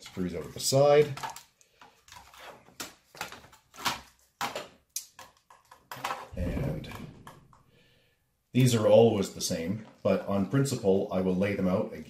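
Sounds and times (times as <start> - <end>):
low handling rumble: 6.4 - 7.3.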